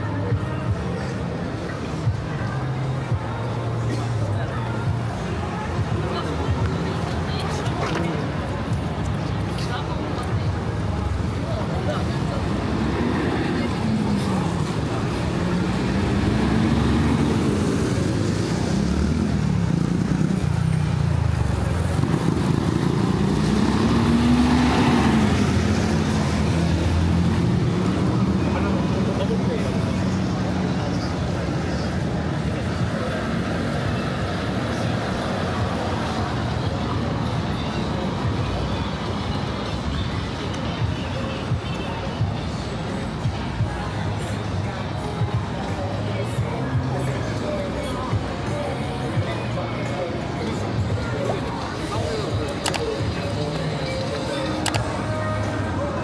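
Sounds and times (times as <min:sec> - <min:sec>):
vehicles passing on wet street: 0:00.0 - 0:56.0
bus passing close: 0:09.6 - 0:45.2.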